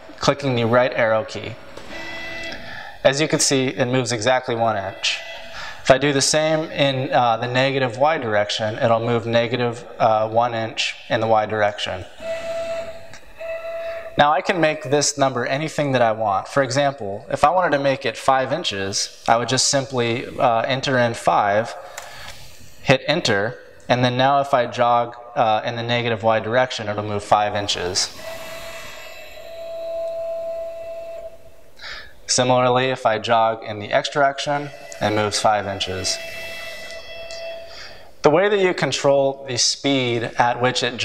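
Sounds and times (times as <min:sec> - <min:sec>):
stepper motors whining: 0:00.0 - 0:14.5, 0:18.5 - 0:23.9, 0:26.8 - 0:38.2.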